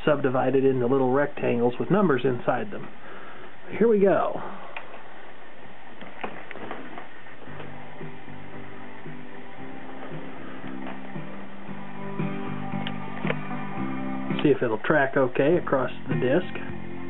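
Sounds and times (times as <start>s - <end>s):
guitar music through speakers: 6.5s - 17.0s.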